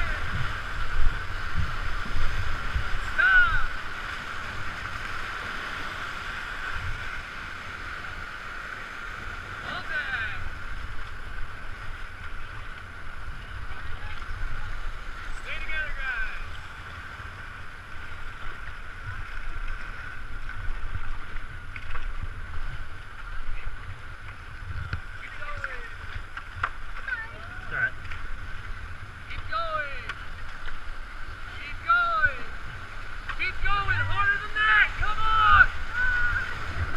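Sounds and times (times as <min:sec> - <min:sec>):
river water rushing: 0:00.0 - 0:36.9
people calling: 0:33.3 - 0:36.9.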